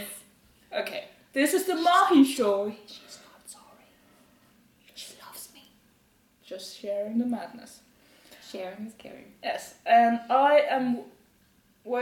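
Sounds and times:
faint whispered voice: 0:02.8 - 0:04.0, 0:04.8 - 0:05.8.

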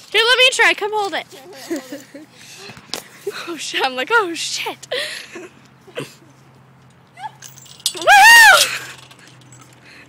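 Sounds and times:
girl squealing: 0:07.2 - 0:07.4, 0:08.0 - 0:08.9.

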